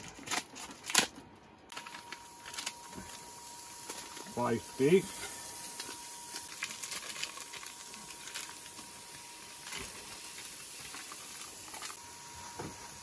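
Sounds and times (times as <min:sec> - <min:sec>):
plastic wrap crinkling: 0:00.0 - 0:12.6
meat sizzling in a pan: 0:02.1 - 0:13.0.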